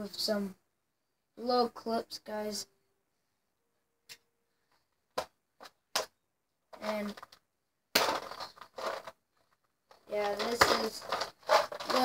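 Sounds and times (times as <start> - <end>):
loud rustling: 8.0 - 12.0
plastic box clicks: 9.9 - 12.0.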